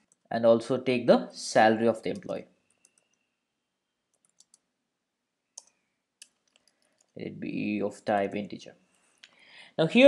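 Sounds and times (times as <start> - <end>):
keyboard keys clicking: 4.1 - 4.6.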